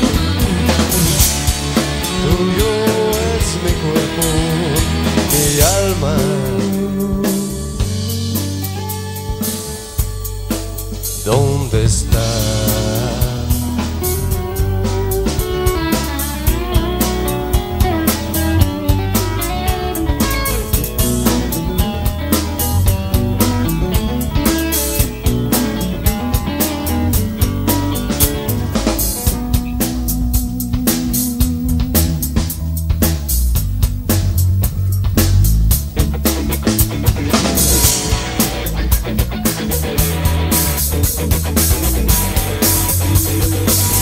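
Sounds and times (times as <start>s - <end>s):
bass guitar: 0.0s - 44.0s
drum kit playing: 0.0s - 44.0s
electric guitar: 0.0s - 44.0s.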